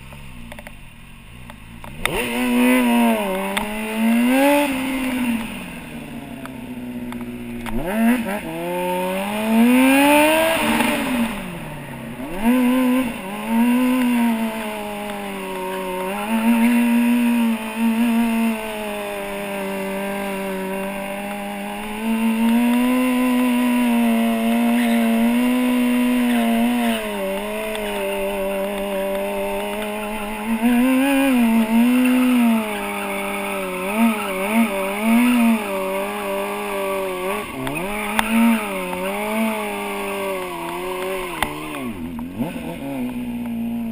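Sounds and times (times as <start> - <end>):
motorcycle engine revving: 0.0 - 43.9.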